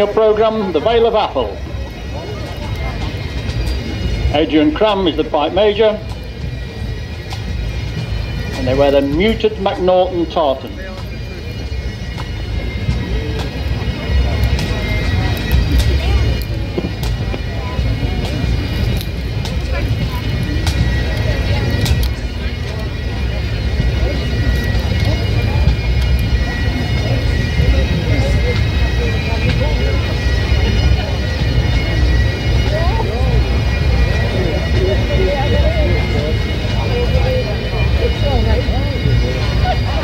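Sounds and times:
bagpipe drone: 0.0s - 40.0s
faint crowd chatter: 0.0s - 40.0s.

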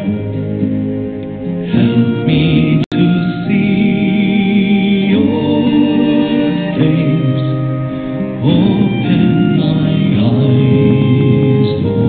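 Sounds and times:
hymn singing with instruments: 0.0s - 12.0s.

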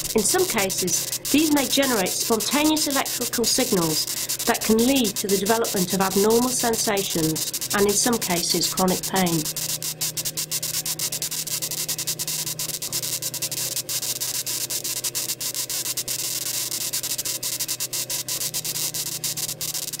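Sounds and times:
low hum: 0.0s - 13.9s
crackling clicks: 0.0s - 20.0s
hissing static: 0.0s - 20.0s.

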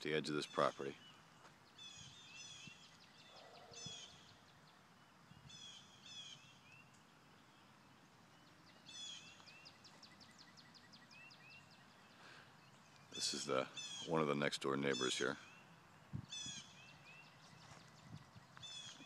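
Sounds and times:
songbird singing: 0.0s - 19.0s.

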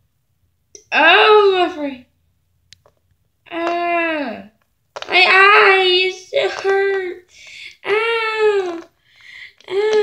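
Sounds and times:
girl's sing-song voice: 5.1s - 8.9s, 9.6s - 10.0s.

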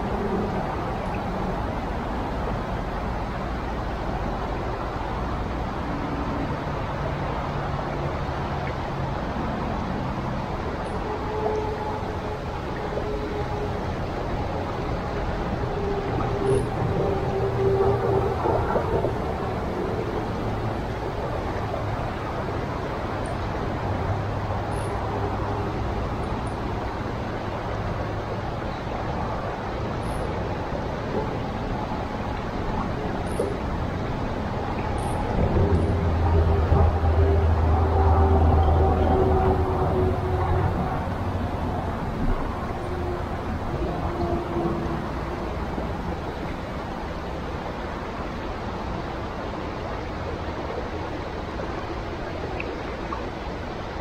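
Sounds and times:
low humming tone: 0.0s - 53.8s
small waterfall rushing: 0.0s - 54.0s.

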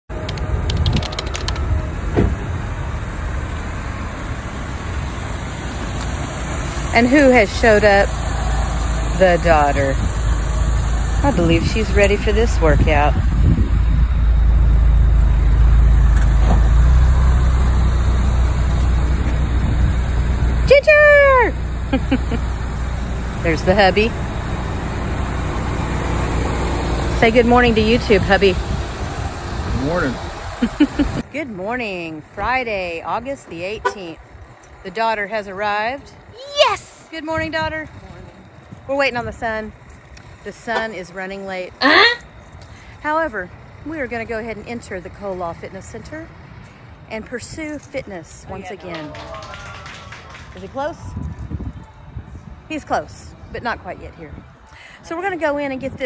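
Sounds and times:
car engine running: 0.1s - 31.2s.

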